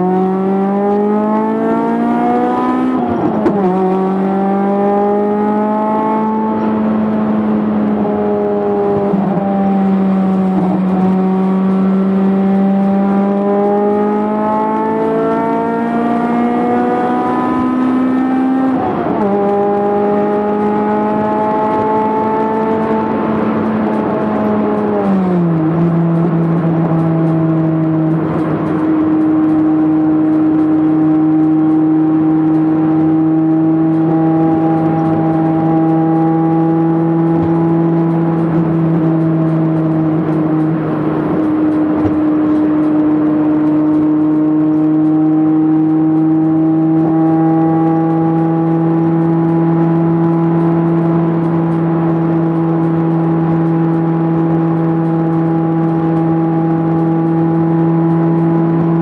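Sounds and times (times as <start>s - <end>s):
car engine droning: 0.0s - 59.0s
road noise: 0.0s - 59.0s.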